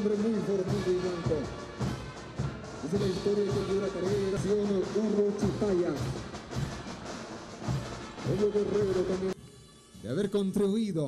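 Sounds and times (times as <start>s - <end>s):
drumming: 0.0s - 9.4s
parade music: 0.0s - 11.0s.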